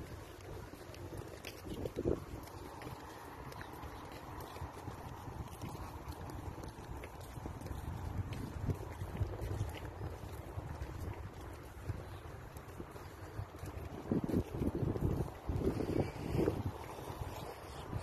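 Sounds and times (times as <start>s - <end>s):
wind rumbling on microphone: 0.0s - 18.0s.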